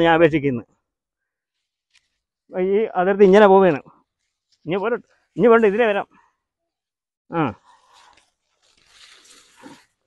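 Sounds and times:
rustling of grass and leaves: 0:01.4 - 0:10.0.

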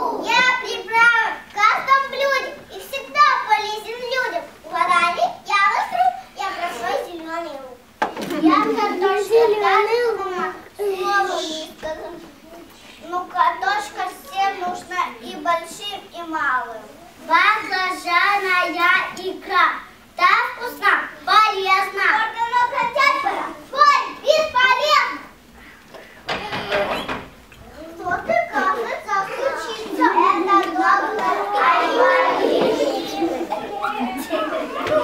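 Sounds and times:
child speaking: 0:00.0 - 0:25.4, 0:27.6 - 0:35.0.

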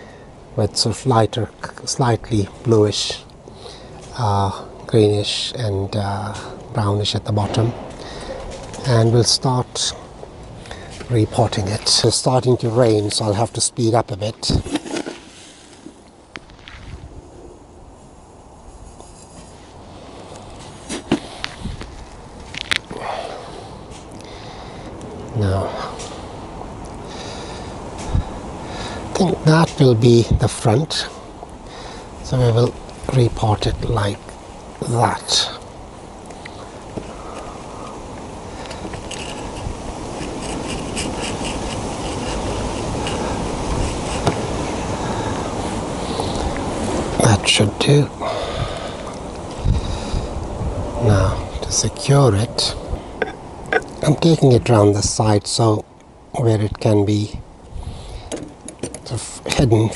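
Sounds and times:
wind buffeting microphone: 0:16.4 - 0:19.0, 0:19.8 - 0:55.2, 0:57.3 - 0:59.9.

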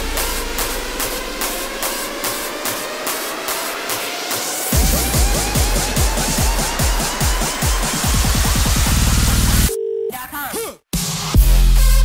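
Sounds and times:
bass-boosted electronic dance music: 0:00.0 - 0:09.7, 0:11.0 - 0:12.0.

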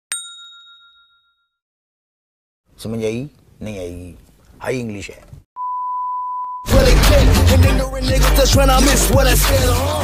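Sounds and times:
bright bell-like ding: 0:00.1 - 0:01.6.

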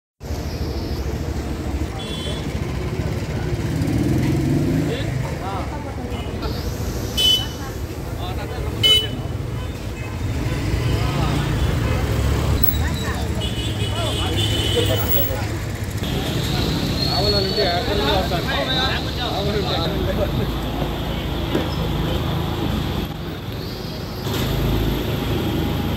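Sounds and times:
street traffic rumbling: 0:00.2 - 0:25.9
people talking: 0:01.5 - 0:03.8, 0:04.7 - 0:22.1
vehicle horns tooting: 0:02.0 - 0:02.6, 0:07.2 - 0:07.6, 0:08.8 - 0:15.3.

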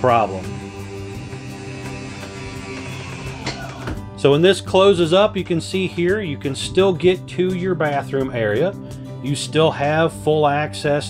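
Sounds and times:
rock music with guitar and drums: 0:00.0 - 0:11.0.

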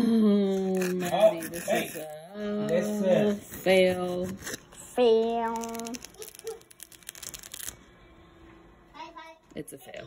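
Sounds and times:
plastic sheet peeling crackle: 0:05.2 - 0:07.9.

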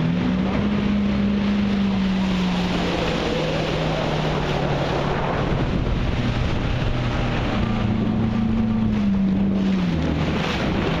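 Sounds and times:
engine droning: 0:00.0 - 0:11.0
wind rumble on microphone: 0:00.0 - 0:11.0.

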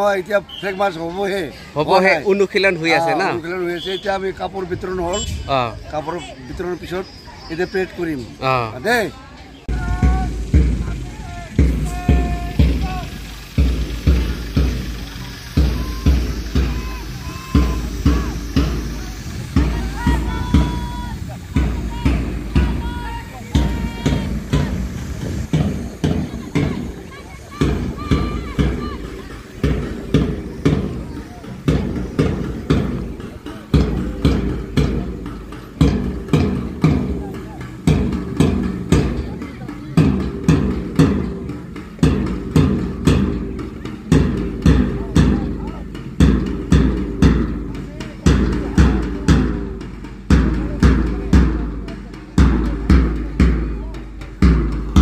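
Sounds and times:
drum beating steady rhythm: 0:00.0 - 0:55.0.

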